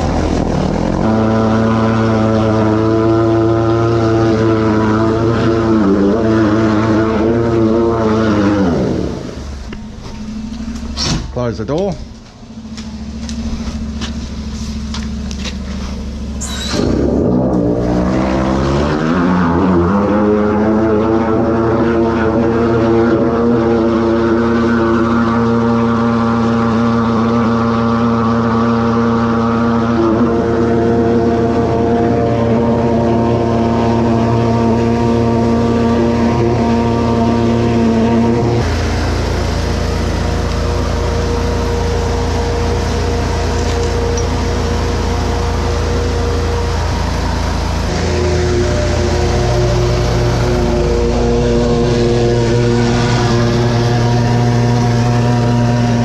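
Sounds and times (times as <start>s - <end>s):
drain jetter humming: 0.0s - 21.2s, 22.1s - 56.0s
steady rumble: 0.0s - 56.0s.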